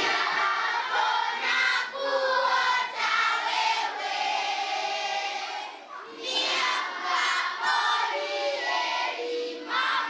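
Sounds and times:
children singing together: 0.0 - 10.0.

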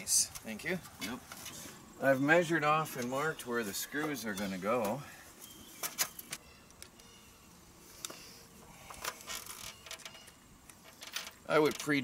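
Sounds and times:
small hardware clicking and rattling: 8.9 - 12.0.

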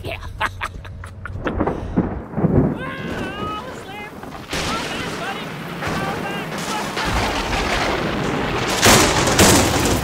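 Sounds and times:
thunder crack and rumble: 1.3 - 10.0.

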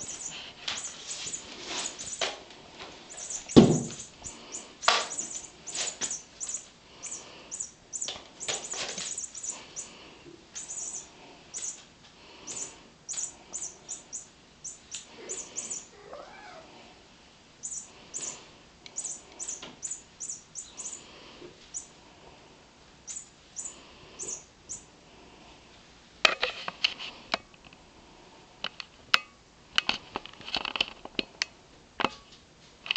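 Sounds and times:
cat batting toys on carpet: 0.0 - 7.2, 8.0 - 13.8
cat meowing: 15.2 - 16.8.

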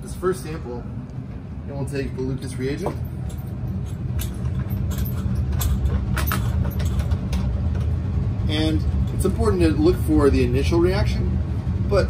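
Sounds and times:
fume hood ventilation rumble: 0.0 - 12.0.

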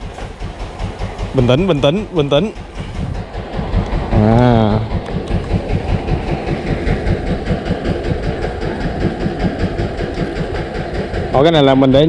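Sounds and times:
boat engine chugging: 0.0 - 12.0.

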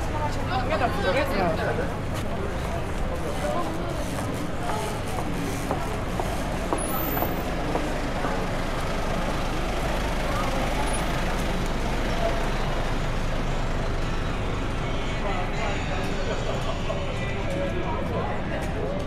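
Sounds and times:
people talking: 0.0 - 8.6, 9.8 - 13.1, 14.5 - 19.0
truck idling: 0.0 - 17.5.

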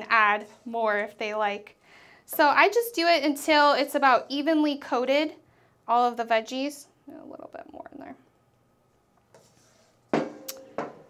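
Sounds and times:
spatula scraping in a wok: 0.1 - 1.2, 9.3 - 10.6.

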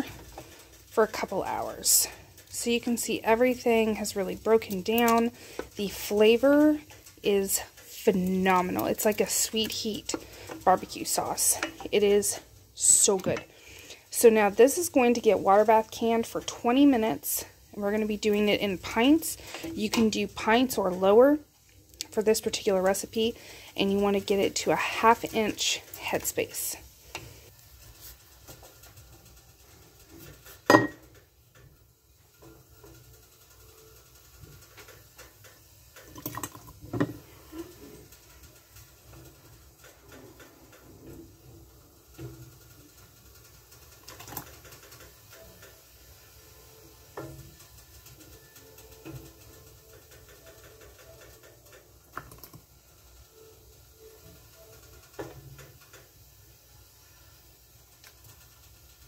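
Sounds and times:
ladle knocking steel pot: 30.7 - 31.1.

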